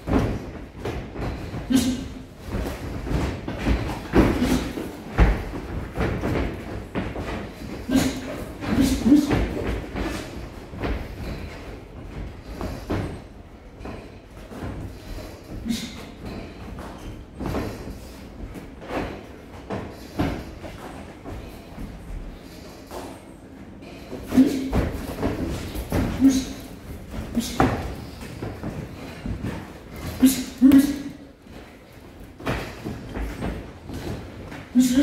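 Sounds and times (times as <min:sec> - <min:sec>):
footwork on ring canvas: 0:00.0 - 0:35.0.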